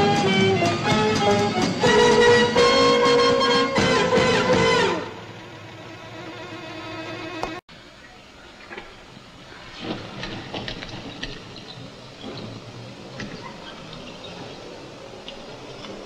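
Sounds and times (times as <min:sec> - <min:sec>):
wheelchair wheels rolling on pavement: 0:08.5 - 0:16.0.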